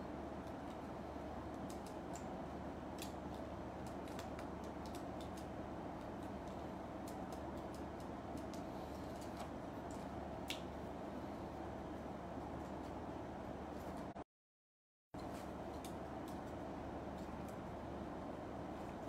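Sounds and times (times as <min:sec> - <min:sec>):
low room hum: 0:00.0 - 0:14.2, 0:15.2 - 0:19.0.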